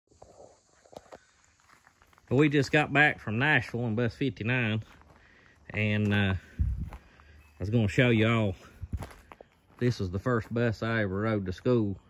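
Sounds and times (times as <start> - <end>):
footsteps on gravel: 0.2 - 12.0.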